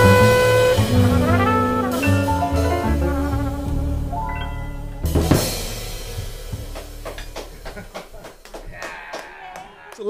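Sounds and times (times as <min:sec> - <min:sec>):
jazz band final hit: 0:00.0 - 0:08.6
cymbal and drum crash: 0:05.0 - 0:08.2
short sharp hits: 0:05.0 - 0:08.7.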